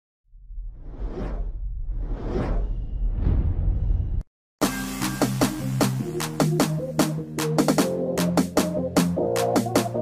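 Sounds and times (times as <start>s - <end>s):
cinematic whooshes: 0.6s - 4.3s.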